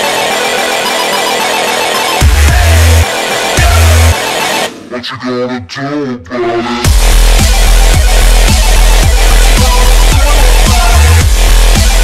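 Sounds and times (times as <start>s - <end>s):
buzzing synth: 0.0s - 4.8s, 6.9s - 12.0s.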